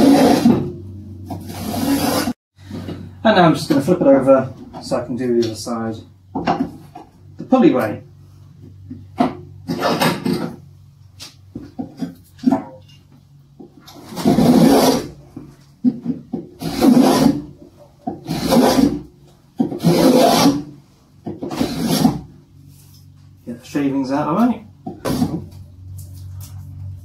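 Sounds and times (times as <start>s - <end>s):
spokeshave scraping wood: 0.0s - 3.0s, 13.9s - 23.1s.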